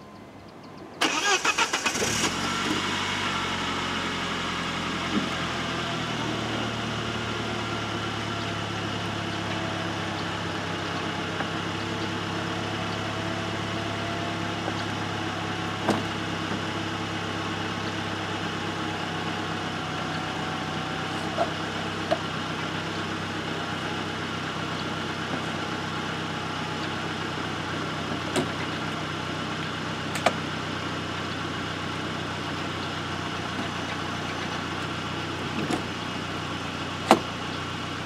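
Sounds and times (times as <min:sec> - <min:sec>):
car engine cranking and idling: 0:00.0 - 0:38.0.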